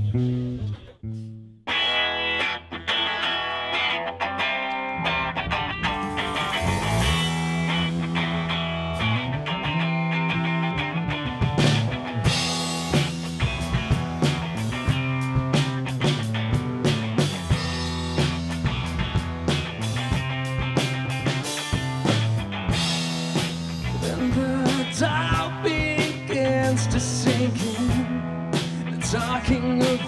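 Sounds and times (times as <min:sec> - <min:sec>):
rock band playing instrumental: 0:01.7 - 0:30.0.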